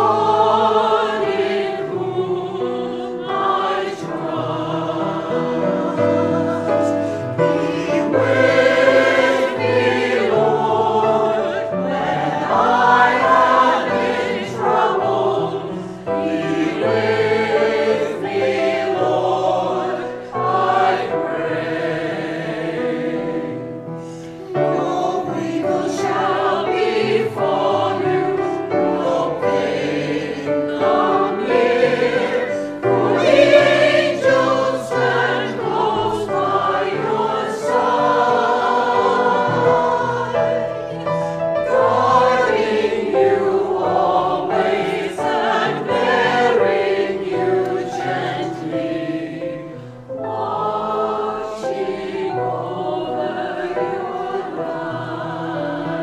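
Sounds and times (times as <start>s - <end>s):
choir singing a hymn: 0.0s - 56.0s.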